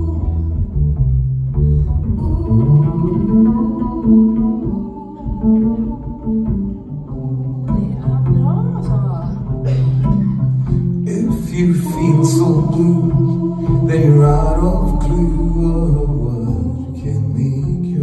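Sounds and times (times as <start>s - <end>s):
double bass low notes: 0.0s - 18.0s.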